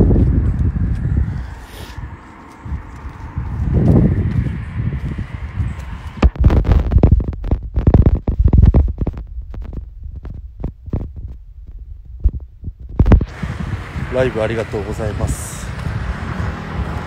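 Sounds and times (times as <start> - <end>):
wind buffeting phone microphone: 0.0 - 17.0.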